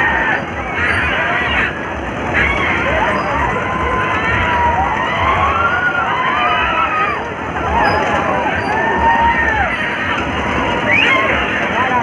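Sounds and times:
crowd noise: 0.0s - 12.0s
riders screaming and shouting: 0.0s - 12.0s.

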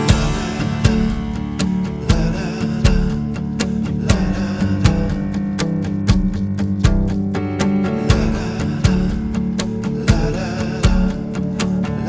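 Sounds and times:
strummed guitar over beat: 0.0s - 12.0s.

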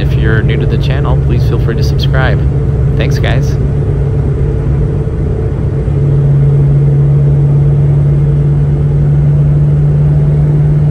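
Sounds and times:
car engine drone: 0.0s - 10.9s
road noise: 0.0s - 10.9s.

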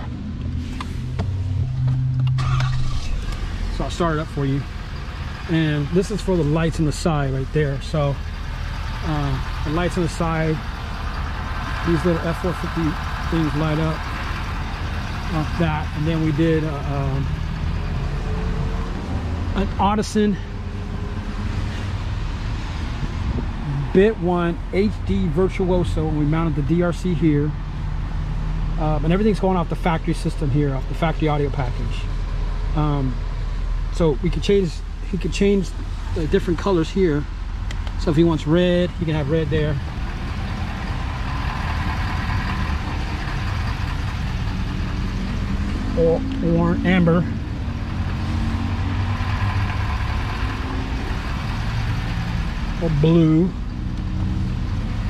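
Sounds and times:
diesel engine idling: 0.0s - 55.0s
man talking: 3.7s - 4.7s, 5.5s - 8.2s, 9.0s - 10.7s, 11.8s - 14.0s, 15.3s - 17.3s, 19.6s - 20.5s, 23.4s - 27.6s, 28.8s - 32.1s, 32.8s - 33.2s, 33.9s - 37.3s, 38.0s - 39.8s, 45.9s - 47.4s, 52.8s - 53.6s.

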